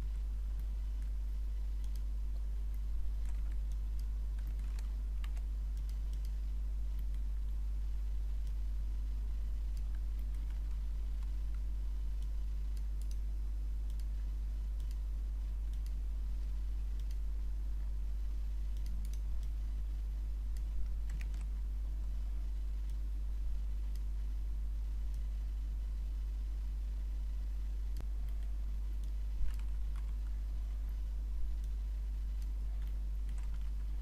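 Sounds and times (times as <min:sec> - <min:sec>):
low electrical hum: 0:00.0 - 0:34.0
keyboard and mouse clicks: 0:02.7 - 0:07.3, 0:16.9 - 0:17.2, 0:18.7 - 0:19.5, 0:20.5 - 0:21.5, 0:27.9 - 0:30.4, 0:32.4 - 0:34.0.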